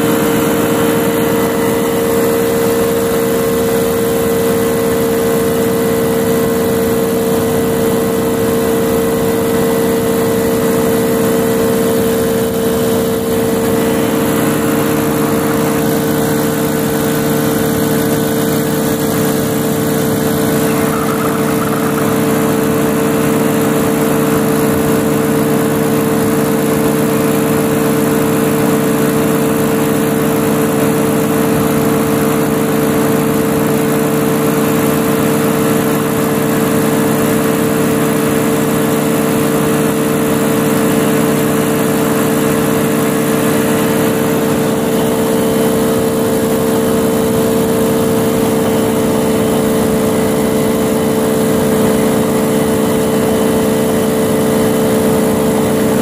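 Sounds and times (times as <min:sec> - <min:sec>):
paraglider engine and propeller drone: 0:00.0 - 0:56.0.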